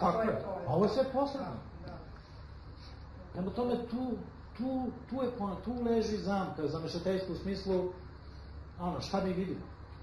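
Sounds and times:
person speaking: 0:00.0 - 0:09.9.

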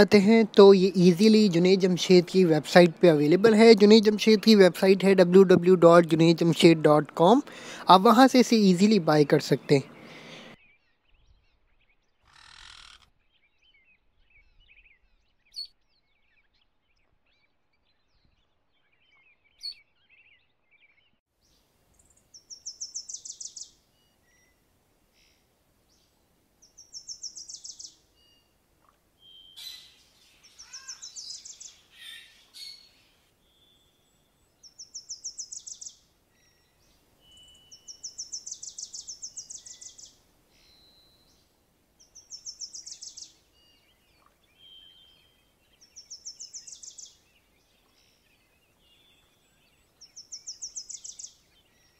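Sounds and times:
songbird trilling: 0:22.0 - 0:24.5, 0:26.6 - 0:41.3, 0:42.0 - 0:51.9.

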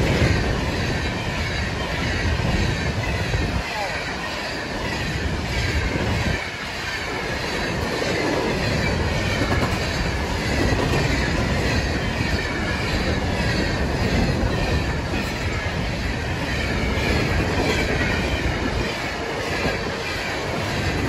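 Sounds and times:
freight train wheels rumbling on rails: 0:00.0 - 0:21.0.

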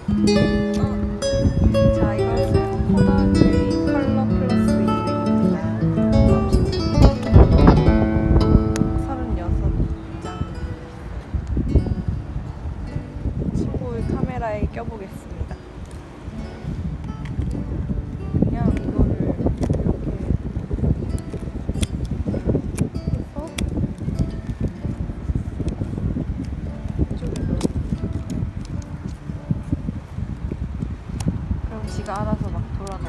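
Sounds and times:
music: 0:00.0 - 0:33.0
wind buffeting microphone: 0:00.0 - 0:33.0.

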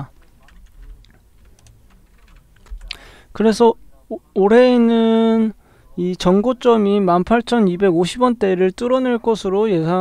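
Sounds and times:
computer keys clicking: 0:00.0 - 0:03.1.

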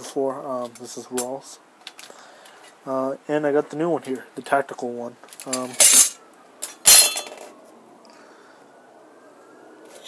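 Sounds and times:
steel blades clinking and clattering: 0:05.4 - 0:07.5.

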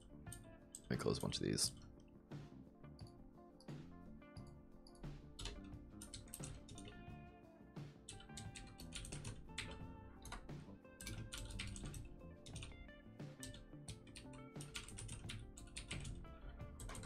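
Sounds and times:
soft background music: 0:00.0 - 0:17.0
keyboard typing: 0:04.4 - 0:07.0, 0:08.1 - 0:12.8, 0:13.4 - 0:17.0.

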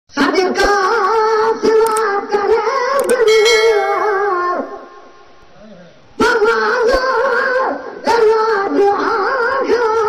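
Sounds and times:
steady accompanying tones: 0:03.0 - 0:05.4.

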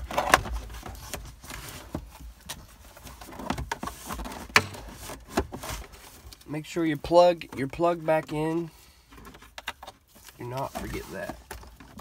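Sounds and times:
plastic rubbing and rustling: 0:00.0 - 0:12.0.

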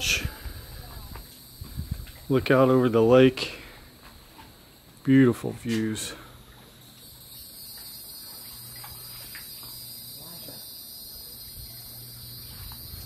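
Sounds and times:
insects droning: 0:00.0 - 0:13.0.

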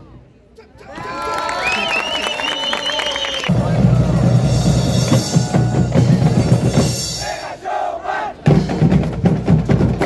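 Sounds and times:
bass drums: 0:03.5 - 0:07.2, 0:08.5 - 0:10.0
people shouting: 0:05.1 - 0:06.1.

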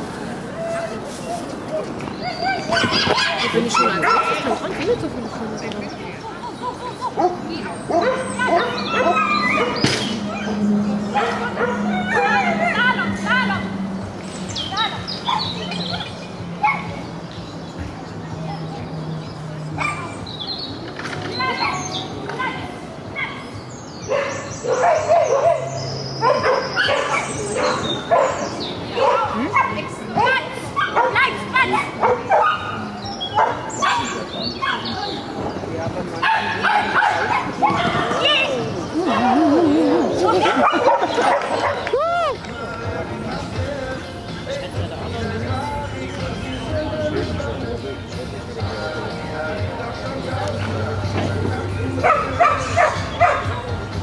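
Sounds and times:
people's voices: 0:00.0 - 0:54.0
dog barking and yipping: 0:02.7 - 0:04.5, 0:07.2 - 0:09.8, 0:11.2 - 0:12.9, 0:24.1 - 0:29.8, 0:30.8 - 0:32.8, 0:33.4 - 0:34.8, 0:40.4 - 0:41.9, 0:52.0 - 0:53.6.

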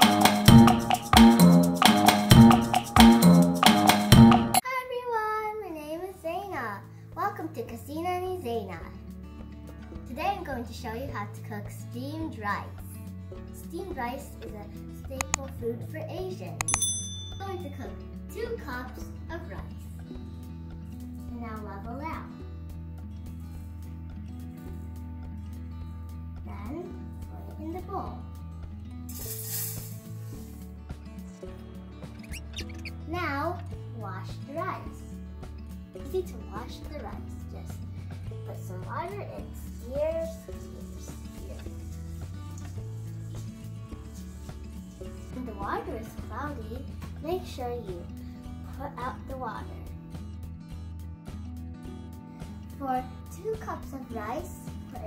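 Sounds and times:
plucked guitar and percussion music: 0:00.0 - 0:04.6, 0:12.4 - 0:55.0
dry rice pouring: 0:29.1 - 0:30.6.

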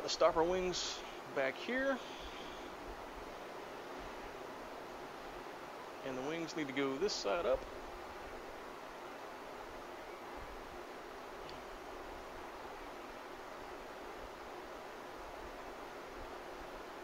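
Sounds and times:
low room hiss: 0:00.0 - 0:17.0.

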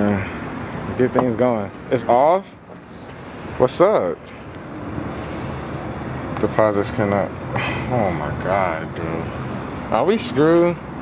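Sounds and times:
distant traffic hum and hiss: 0:00.0 - 0:11.0.

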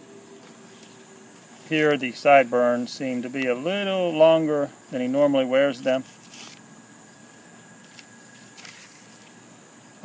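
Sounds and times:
faint background hiss: 0:00.0 - 0:10.0
photo prints rustling: 0:06.0 - 0:06.6, 0:07.8 - 0:09.4.

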